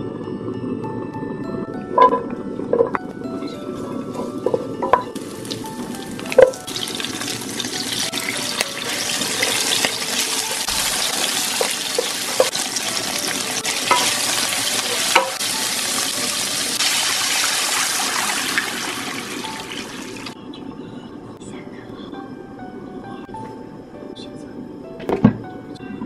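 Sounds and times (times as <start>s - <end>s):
sizzling in hot oil: 4.2s - 20.4s
wooden spatula clacking on pan: 13.8s - 14.2s.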